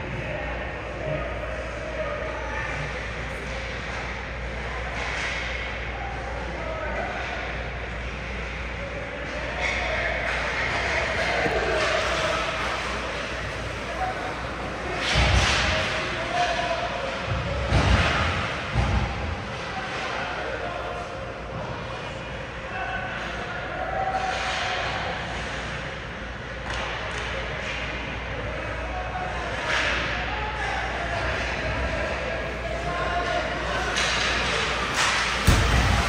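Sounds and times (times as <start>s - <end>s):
echoing voices in a rink: 0.0s - 36.0s.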